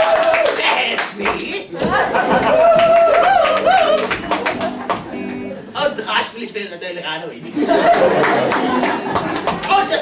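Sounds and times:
hands clapping: 0.0s - 5.3s, 7.9s - 10.0s.

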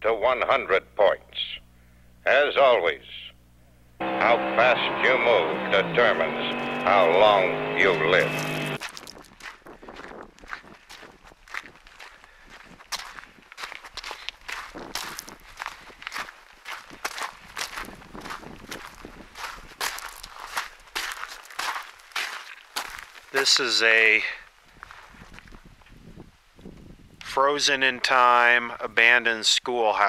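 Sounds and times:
footsteps crunching on gravel: 6.5s - 25.7s.

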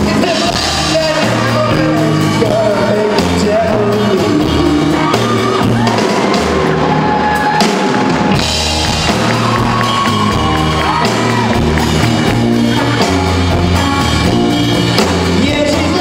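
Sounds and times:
person singing: 0.0s - 6.1s, 15.2s - 16.0s
drums: 0.0s - 16.0s
electric guitar: 0.0s - 16.0s.

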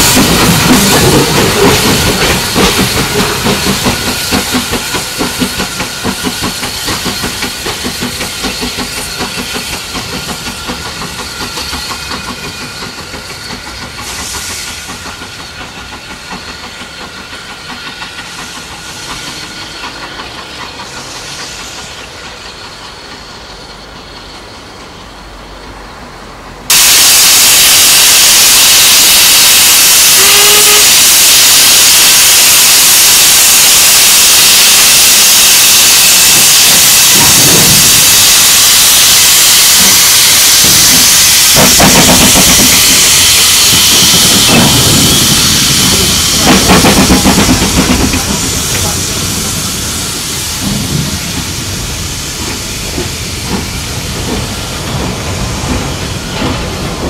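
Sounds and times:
loud hiss of escaping steam: 0.0s - 24.0s, 26.7s - 57.0s
steam locomotive exhaust beats: 0.0s - 25.8s, 26.7s - 57.0s.

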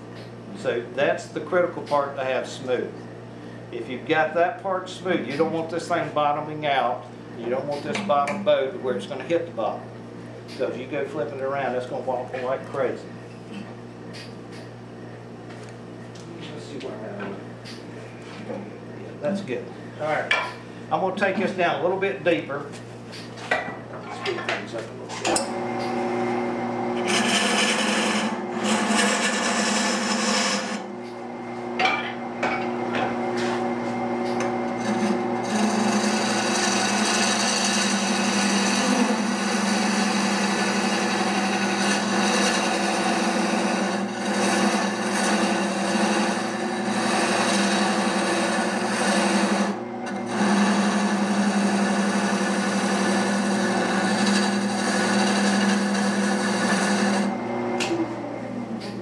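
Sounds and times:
lathe motor hum: 25.4s - 58.8s
lathe tool scraping wood: 25.5s - 30.9s, 33.0s - 57.6s.

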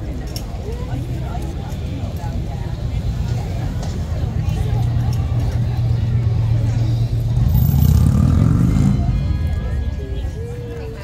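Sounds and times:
heavy vehicle engine rumble: 0.0s - 11.0s
people talking: 0.0s - 11.0s.

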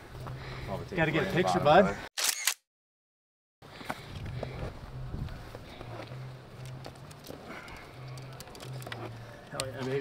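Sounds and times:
arrow shafts clicking and scraping: 6.6s - 10.0s.

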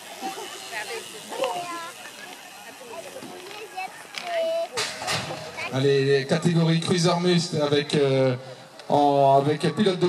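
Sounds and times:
indistinct voices and chatter: 0.0s - 10.0s
outdoor background noise: 0.0s - 10.0s.

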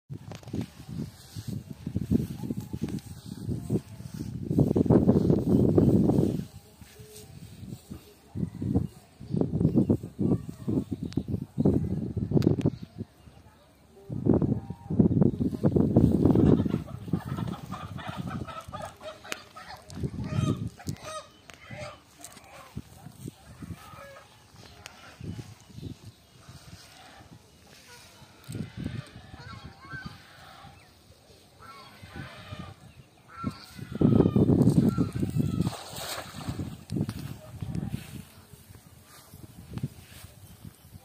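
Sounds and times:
chickens clucking and calling: 16.2s - 36.8s
net rim hitting water: 35.0s - 37.3s.

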